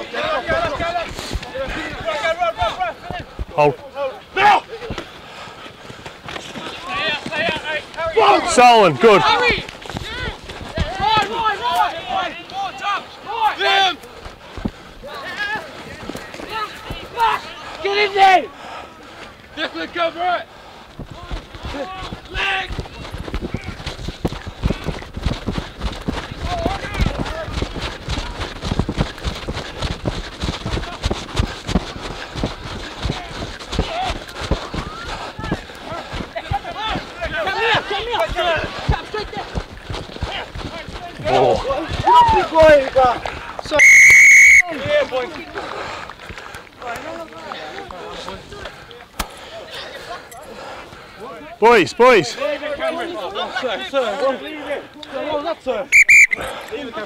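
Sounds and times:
players shouting: 6.4s - 14.2s, 15.0s - 19.0s, 32.0s - 45.6s
referee's whistle blast: 43.8s - 44.7s, 55.9s - 56.5s.

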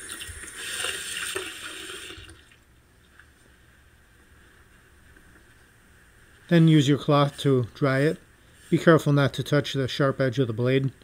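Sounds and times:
tap water running into sink: 0.0s - 2.6s.

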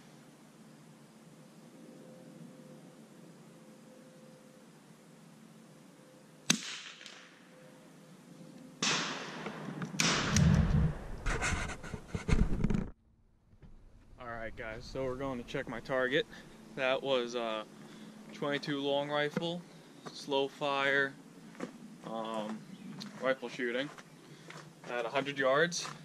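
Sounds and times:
rifle shot crack: 6.5s - 7.4s, 8.8s - 11.2s
rustling and handling thumps: 10.5s - 13.8s.

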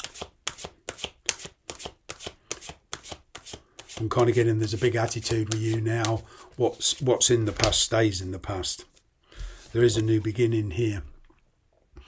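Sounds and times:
cards being shuffled: 0.0s - 7.8s.

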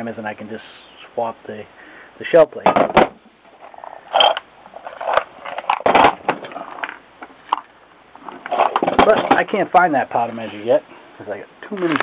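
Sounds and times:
small metal parts clattering in bin: 4.1s - 6.9s.

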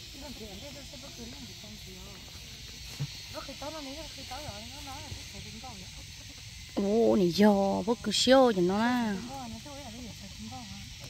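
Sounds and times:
steady high-pitched hiss: 0.0s - 11.0s.

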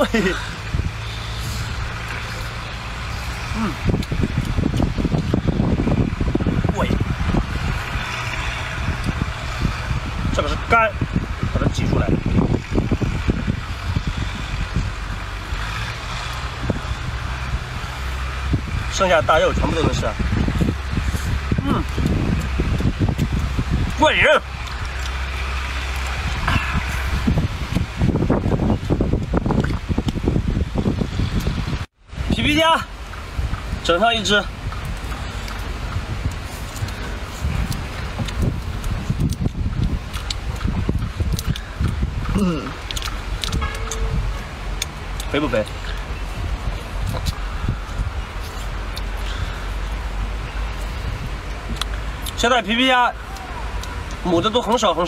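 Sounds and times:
low engine rumble: 0.0s - 54.7s
person chewing shellfish: 24.6s - 27.8s, 34.9s - 44.0s, 46.9s - 49.9s, 51.5s - 52.4s
clicking smacking eating noises: 34.7s - 44.0s, 51.4s - 52.4s.

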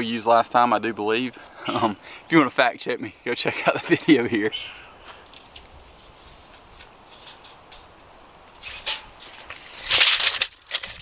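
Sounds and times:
scraping rustle: 5.0s - 11.0s.

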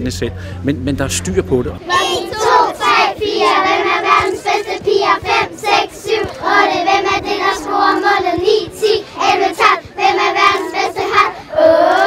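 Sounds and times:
children singing in unison: 1.9s - 12.0s.

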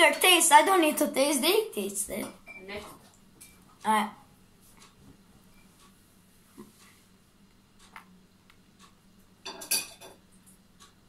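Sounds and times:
tableware clinking: 9.4s - 10.2s.

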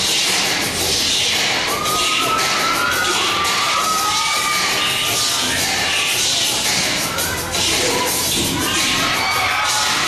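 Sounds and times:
audience cheering: 1.5s - 5.2s, 8.6s - 10.0s
high-pitched screams: 1.5s - 6.4s, 7.0s - 10.0s.

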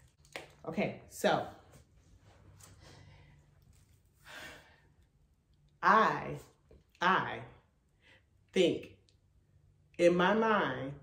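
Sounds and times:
woman speaking: 0.6s - 1.7s, 5.8s - 7.6s, 10.0s - 11.0s.

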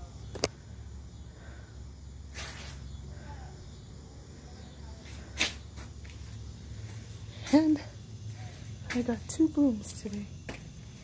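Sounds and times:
hissing rustle: 2.3s - 3.0s.

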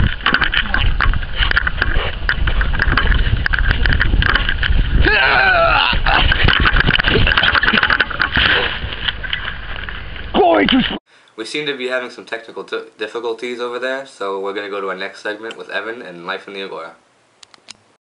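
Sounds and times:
microphone jostled and wind buffeting: 0.0s - 11.0s
person yelling: 5.0s - 6.2s.

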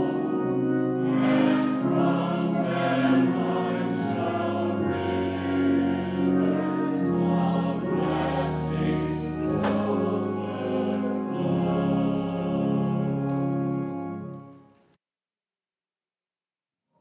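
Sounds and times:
mixed choir singing: 0.0s - 13.2s.

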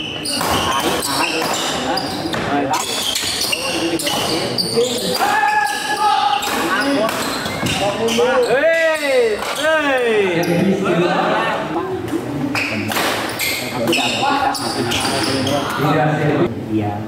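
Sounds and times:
people shouting: 5.0s - 7.2s.

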